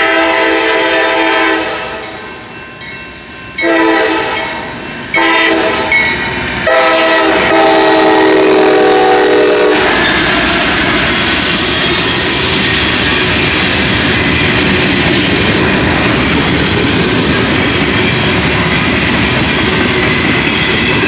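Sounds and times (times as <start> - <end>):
locomotive air horn blasts: 0.0 - 2.2, 3.6 - 4.6, 5.2 - 6.0, 6.7 - 10.2
train wheel noise: 0.0 - 21.0.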